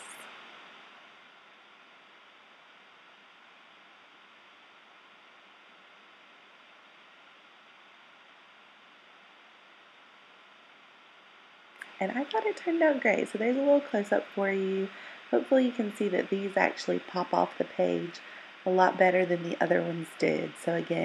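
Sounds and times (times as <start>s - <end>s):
faint steady hiss: 0.0s - 21.0s.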